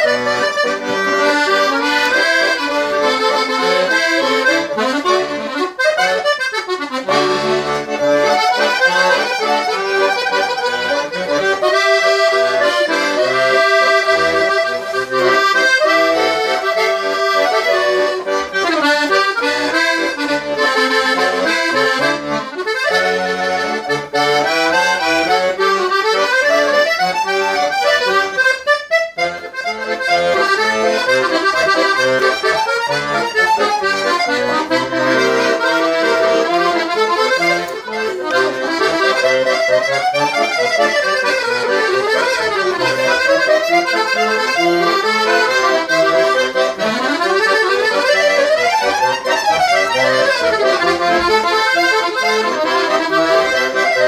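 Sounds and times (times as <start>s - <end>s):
piano accordion playing: 0.0s - 54.0s.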